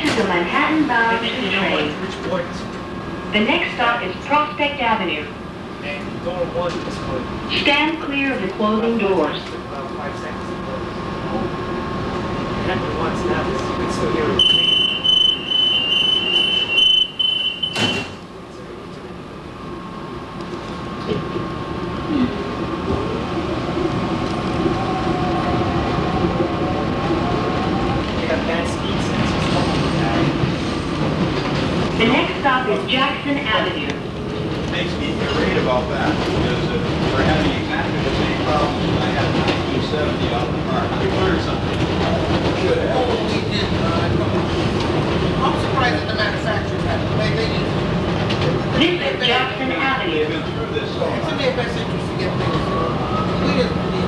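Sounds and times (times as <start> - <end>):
door warning beeps: 14.4 - 18.2
train doors shutting knock: 14.4 - 18.3.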